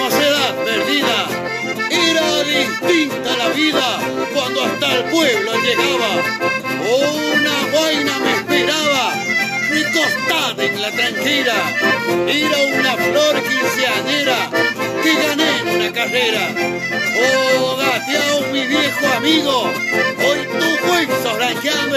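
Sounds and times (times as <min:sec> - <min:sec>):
accordion: 0:00.0 - 0:21.9
acoustic guitar: 0:00.0 - 0:21.9
man singing: 0:00.0 - 0:21.9.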